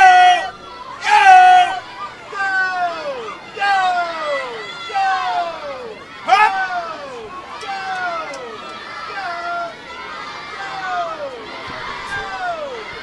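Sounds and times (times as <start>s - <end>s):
crowd noise: 0.0s - 13.0s
high-pitched shouts: 0.0s - 13.0s.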